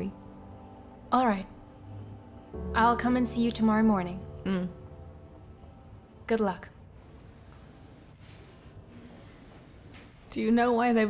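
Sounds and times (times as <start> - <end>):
low hum: 0.0 - 9.7
faint soft rustle: 7.4 - 10.3.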